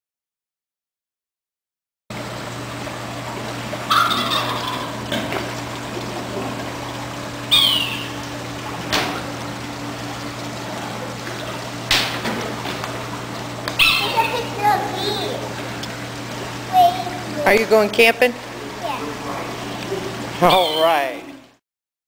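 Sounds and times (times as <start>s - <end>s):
steady low hum: 2.1s - 21.6s.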